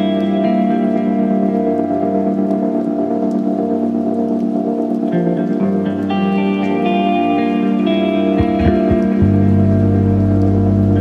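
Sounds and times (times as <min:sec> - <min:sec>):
higher guitar notes: 0:00.0 - 0:11.0
sustained guitar chord: 0:05.1 - 0:11.0.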